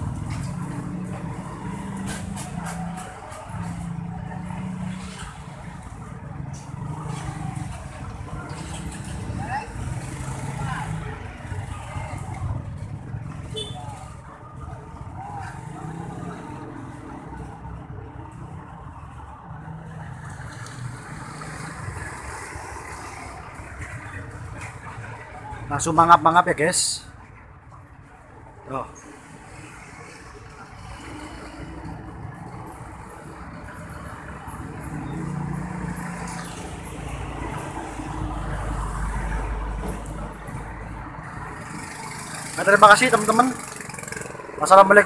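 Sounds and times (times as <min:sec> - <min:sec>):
vehicle running: 0:27.3 - 0:45.0.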